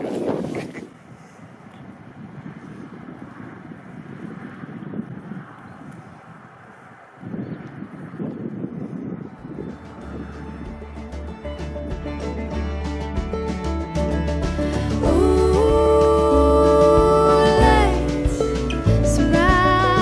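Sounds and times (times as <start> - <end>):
wind buffeting microphone: 0.0 - 20.0
music with deep bass: 9.7 - 20.0.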